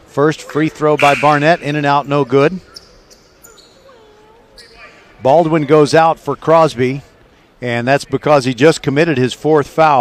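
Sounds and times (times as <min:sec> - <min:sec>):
distant voice calling out: 0:00.5 - 0:05.7.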